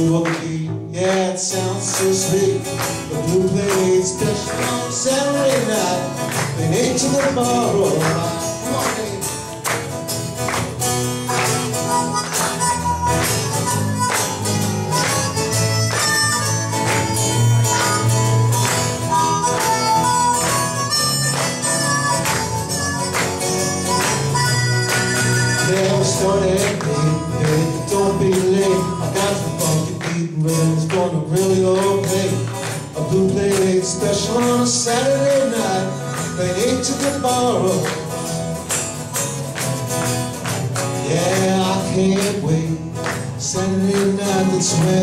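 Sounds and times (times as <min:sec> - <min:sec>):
bass line: 0:00.0 - 0:45.0
strummed acoustic guitar: 0:00.0 - 0:45.0
harmonica playing held notes: 0:10.9 - 0:27.4, 0:35.7 - 0:37.8.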